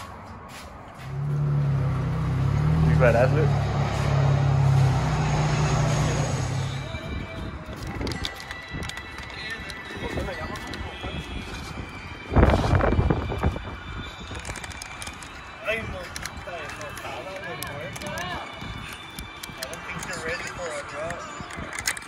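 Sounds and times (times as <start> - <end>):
voices: 2.5 - 13.3, 14.1 - 22.0.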